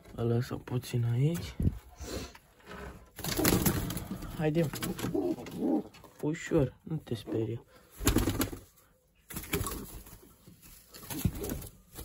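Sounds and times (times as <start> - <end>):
knocks and rustles of birds: 3.1 - 6.1, 8.0 - 8.7, 9.3 - 12.0
pigeons cooing: 4.8 - 6.0.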